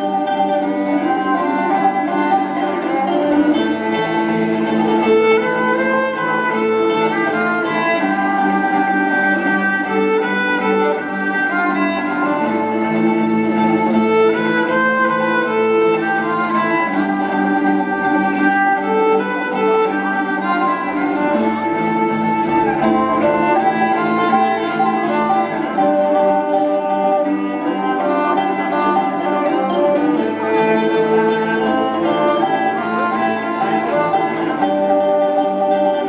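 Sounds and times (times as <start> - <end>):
bowed strings folk dance music: 0.0 - 36.0.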